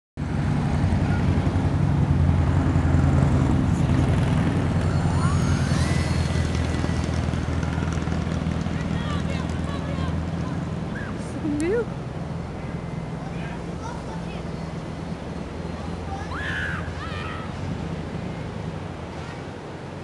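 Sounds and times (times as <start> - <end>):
wind rumble: 0.2 - 20.0
model airplane motor whine: 3.9 - 8.5.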